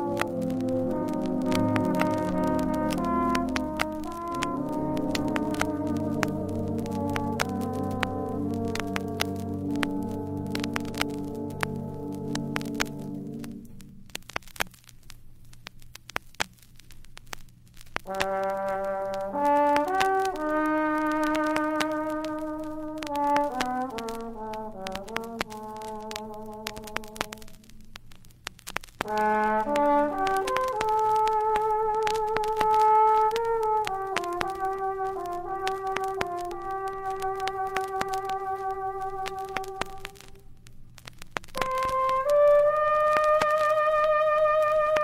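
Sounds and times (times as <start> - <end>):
trombone playing slow melody: 0.0 - 13.7, 18.1 - 27.6, 29.0 - 40.4, 41.6 - 45.0
vinyl record pops and clicks: 0.0 - 45.0.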